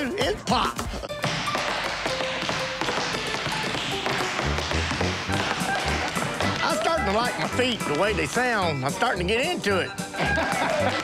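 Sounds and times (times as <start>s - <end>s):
tap shoes on wooden floor: 0.0s - 8.8s
background music: 0.0s - 11.0s.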